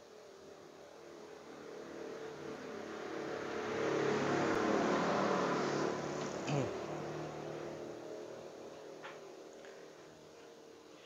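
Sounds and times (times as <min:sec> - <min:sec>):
passing vehicle engine: 0:01.5 - 0:08.6.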